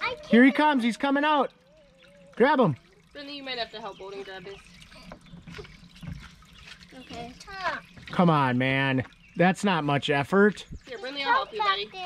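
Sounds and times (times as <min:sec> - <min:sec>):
water trickling and splashing: 0:00.0 - 0:12.0.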